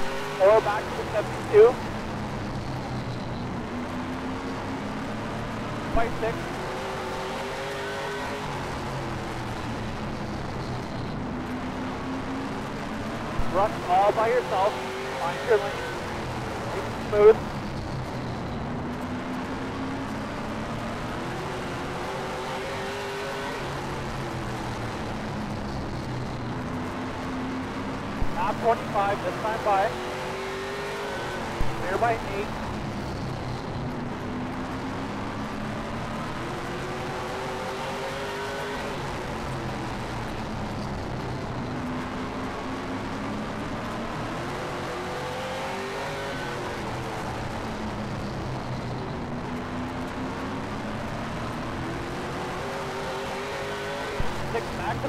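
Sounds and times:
race car engine revving: 0.0 - 48.5, 49.2 - 55.0.

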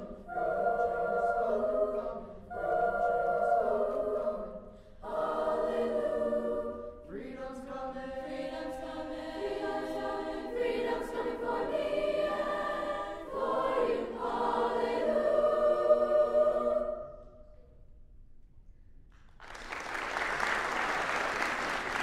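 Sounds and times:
choir singing in harmony: 0.0 - 17.5.

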